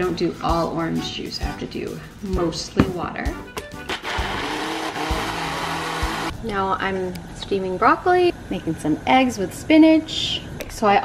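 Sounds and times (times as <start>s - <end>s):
blender motor whirring: 3.9s - 6.3s.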